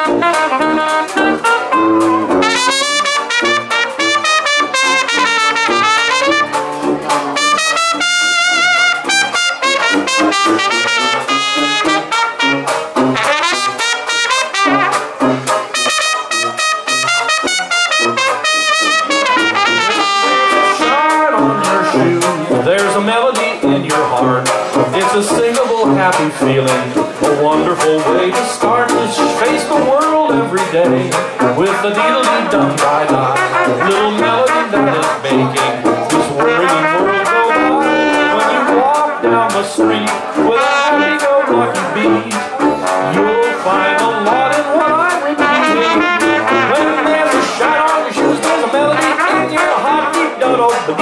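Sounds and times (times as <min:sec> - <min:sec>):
banjo: 0:00.0 - 0:51.0
trombone: 0:00.0 - 0:51.0
trumpet melody: 0:00.0 - 0:51.0
tuba bass: 0:00.0 - 0:51.0
washboard rhythm: 0:00.0 - 0:51.0.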